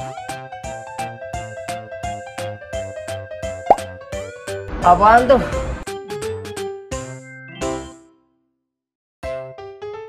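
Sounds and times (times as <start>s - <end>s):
cheerful music with steady beat: 0.0s - 4.7s.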